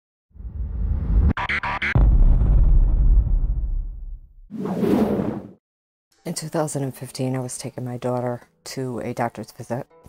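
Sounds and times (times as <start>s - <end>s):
low rumble: 0.4s - 4.5s
whoosh: 0.4s - 5.6s.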